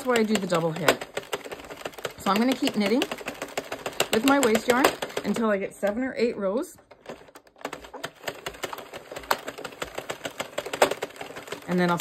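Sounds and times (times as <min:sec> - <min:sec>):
knitting machine needles clicking: 0:00.0 - 0:12.0.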